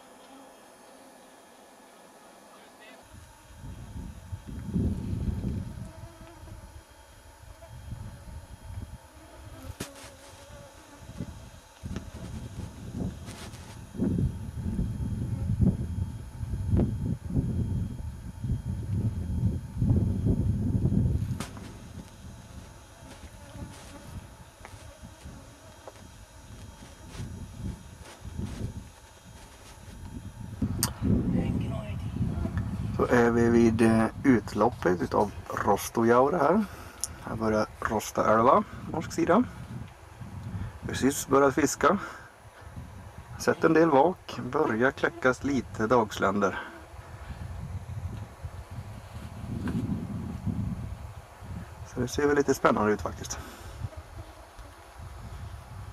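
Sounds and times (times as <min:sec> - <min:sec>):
wind buffeting microphone: 0:03.2 - 0:09.8, 0:10.5 - 0:35.8, 0:38.6 - 0:41.2, 0:42.4 - 0:43.7, 0:46.9 - 0:52.3, 0:53.0 - 0:55.9.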